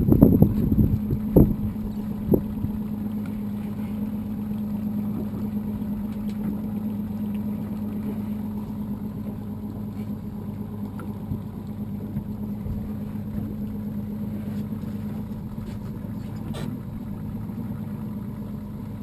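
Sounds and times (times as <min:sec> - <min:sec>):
outboard motor idling: 0:00.0 - 0:19.0.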